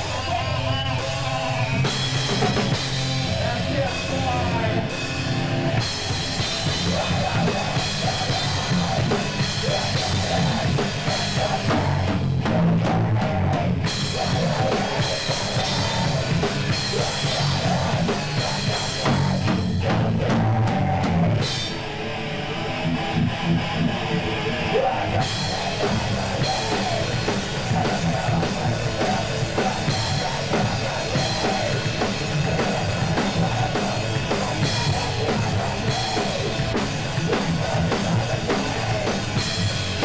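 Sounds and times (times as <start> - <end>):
bass guitar: 0.0 - 40.0
distorted electric guitars: 0.0 - 40.0
pounding drum kit: 0.0 - 40.0.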